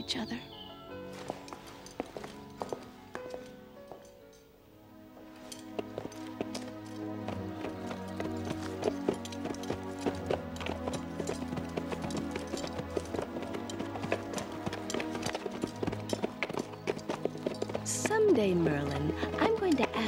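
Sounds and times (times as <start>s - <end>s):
music with long held notes: 0.0s - 20.0s
horse hooves clip-clopping: 1.2s - 4.2s, 5.2s - 20.0s.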